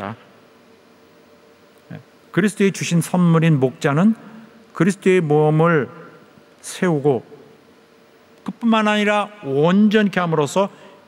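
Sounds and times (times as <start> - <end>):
steady low hum: 0.0 - 11.0
man speaking: 1.8 - 7.4, 8.4 - 11.0.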